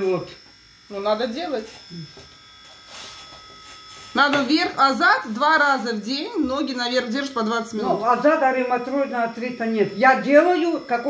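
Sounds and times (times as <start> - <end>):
faint electrical buzz: 0.0 - 11.0.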